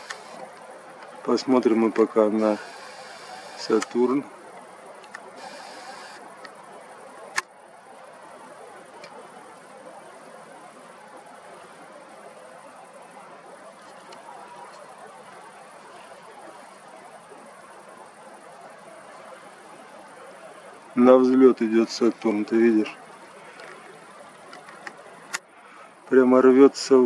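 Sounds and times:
faint background noise: 0:00.0 - 0:27.0.

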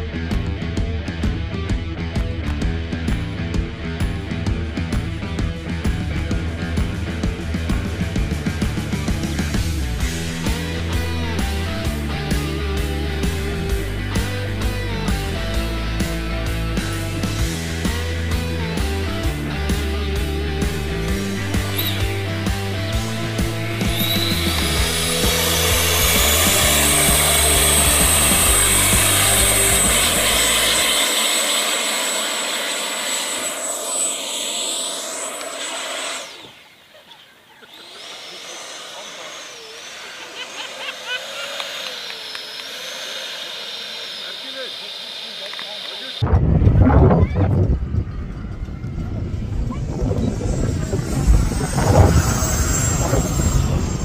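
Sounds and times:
rock music: 0:00.0 - 0:34.1
electric ducted fan whine: 0:09.8 - 0:37.0, 0:37.7 - 0:54.0
loud low rumble: 0:46.2 - 0:54.0.

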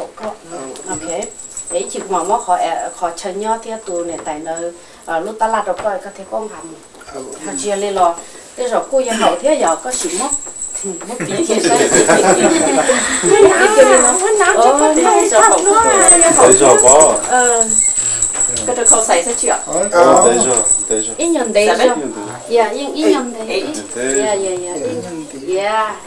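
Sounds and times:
thin steady high tone: 0:00.0 - 0:26.0
coin pendants jingling: 0:00.5 - 0:05.6, 0:06.3 - 0:25.0
voices talking over one another: 0:07.1 - 0:10.4, 0:11.3 - 0:25.4.

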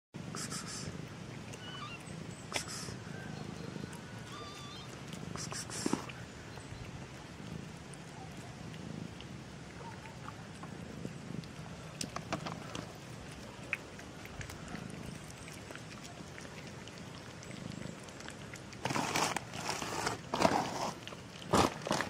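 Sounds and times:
short breathy bursts: 0:00.3 - 0:01.0, 0:02.5 - 0:03.1, 0:05.3 - 0:06.1
kitten purring: 0:00.3 - 0:22.0
faint high chirps: 0:01.5 - 0:05.6.

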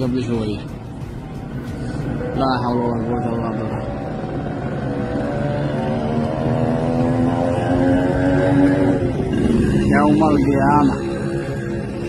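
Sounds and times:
droning motor hum: 0:07.5 - 0:12.0.

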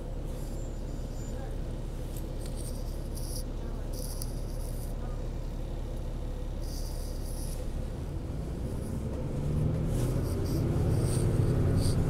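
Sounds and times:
bus engine low rumble: 0:00.0 - 0:12.0.

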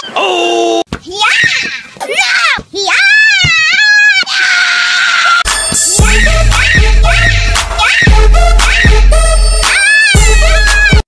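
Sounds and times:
child screaming: 0:01.1 - 0:05.5, 0:09.7 - 0:11.0.

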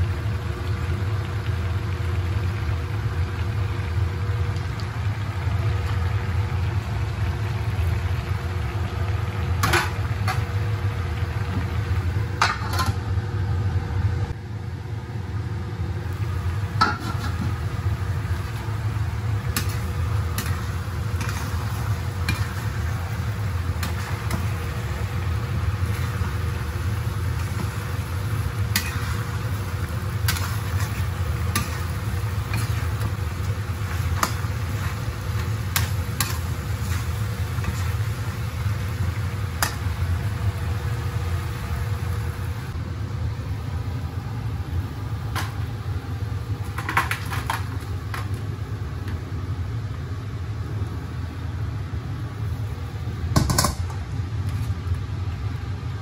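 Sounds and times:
food sizzling in a wok: 0:00.0 - 0:42.8
metal spatula scraping wok: 0:19.6 - 0:22.9, 0:28.7 - 0:29.4, 0:30.2 - 0:38.0.

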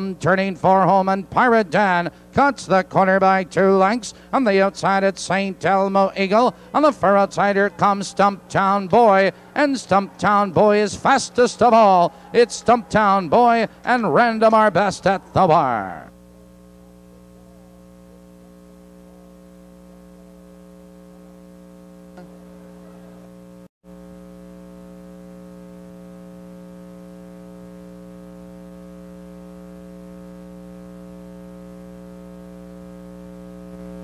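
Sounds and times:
buzzy electrical mains hum: 0:00.0 - 0:34.0.

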